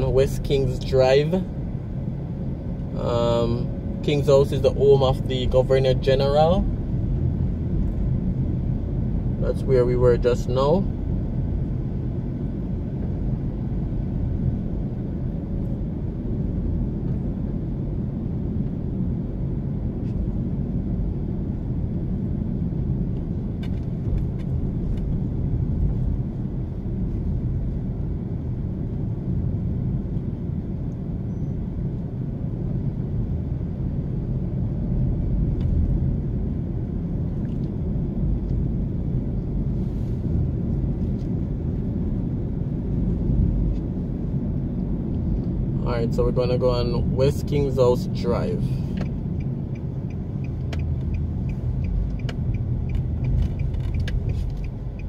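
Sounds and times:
car engine and road noise: 0.0 - 55.0.

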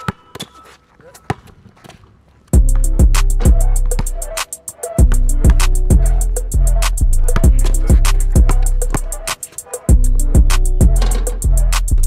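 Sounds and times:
hip-hop beat: 2.6 - 12.0.

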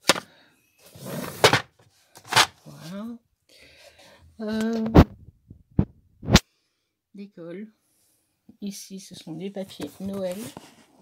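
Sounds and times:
scraping slide: 0.8 - 2.5.

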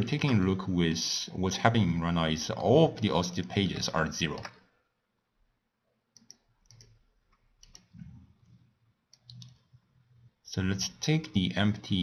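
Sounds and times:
computer mouse clicks: 6.1 - 9.8.

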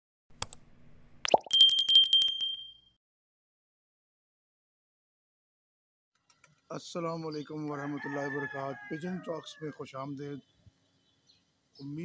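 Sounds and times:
small bell ringing rapidly: 1.5 - 2.9.

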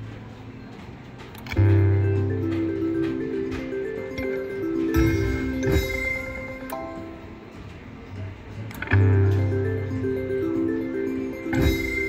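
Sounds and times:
slot machine electronic tones: 1.5 - 7.5, 8.8 - 12.0.

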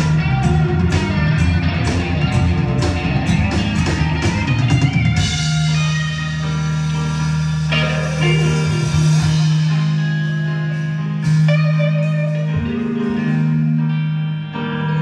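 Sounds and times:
steady drum beat: 0.0 - 13.5
rock band playing: 0.0 - 15.0
sustained low band chord: 5.2 - 15.0.

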